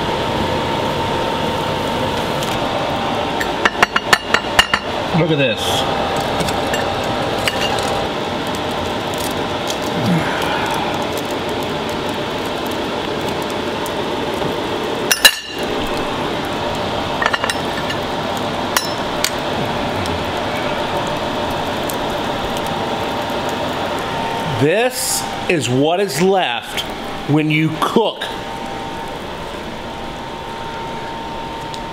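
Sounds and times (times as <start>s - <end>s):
steady background noise: 0.0s - 31.9s.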